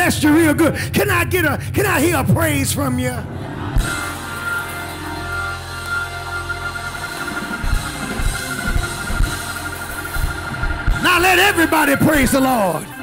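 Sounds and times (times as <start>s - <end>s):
held chords: 2.9s - 13.0s
drum hits: 7.0s - 11.8s.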